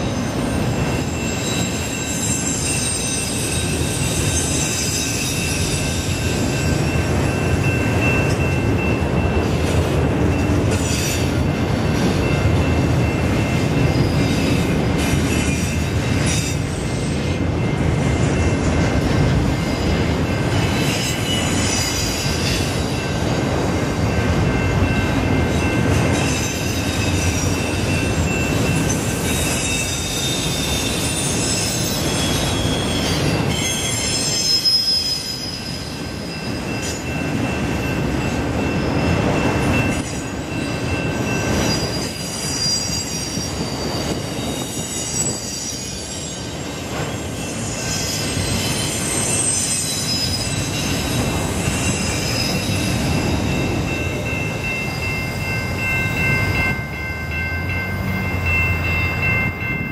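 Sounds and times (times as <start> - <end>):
freight train rumbling past: 0.0 - 59.9
high-pitched wheel squeal: 0.2 - 6.2, 28.8 - 37.0, 41.6 - 53.2.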